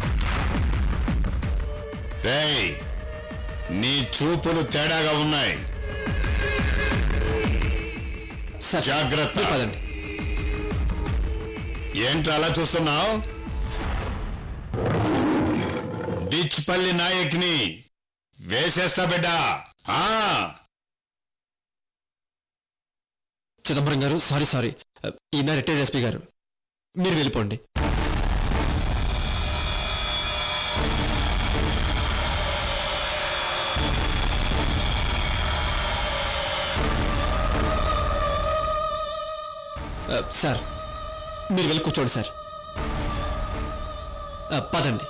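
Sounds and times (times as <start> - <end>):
dramatic background score: 0.0 - 14.8, 27.8 - 45.0
growling roar sound effect: 14.7 - 16.4.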